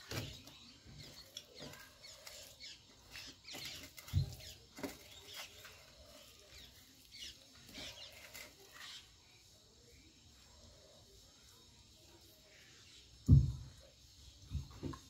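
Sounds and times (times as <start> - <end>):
dull low thump: 13.2 - 13.8.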